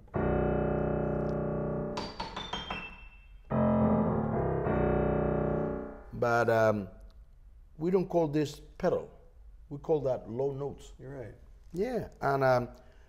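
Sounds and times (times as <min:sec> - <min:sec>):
grand piano chords and notes: 0:00.0 - 0:06.4.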